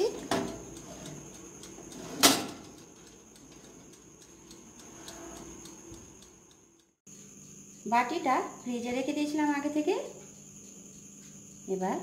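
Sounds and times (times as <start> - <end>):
oven timer ticking: 0.0 - 7.0.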